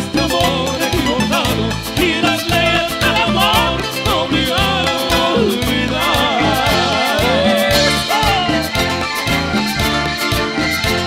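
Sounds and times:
man singing: 0.0s - 8.9s
strummed guitars: 0.0s - 11.0s
drum beat: 0.9s - 10.0s.

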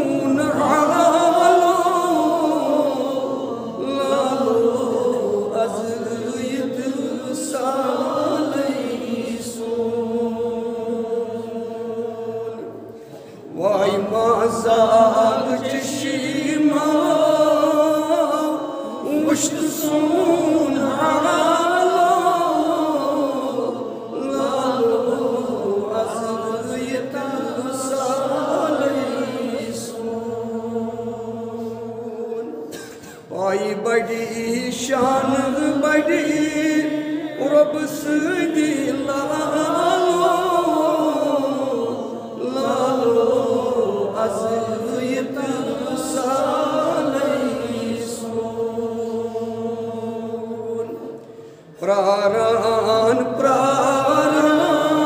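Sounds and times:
man singing devotional chant: 0.0s - 12.7s, 13.5s - 32.6s, 33.2s - 51.0s, 51.8s - 55.0s.

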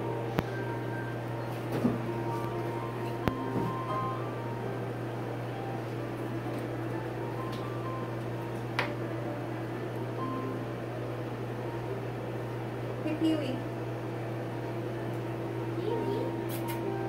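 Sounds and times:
low hum of room machinery: 0.0s - 17.0s.

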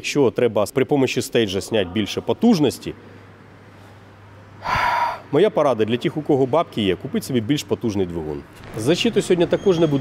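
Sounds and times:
man's quick intake of breath: 4.6s - 5.3s.

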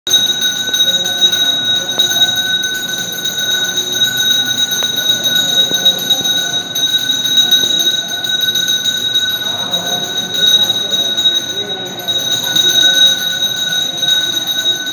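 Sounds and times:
bell ringing rapidly: 0.0s - 14.9s.

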